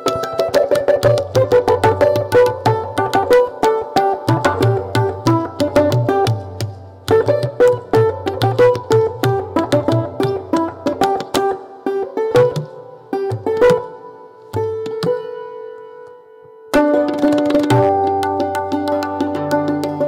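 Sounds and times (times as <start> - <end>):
tabla drumming: 0.0 - 16.1, 16.7 - 20.0.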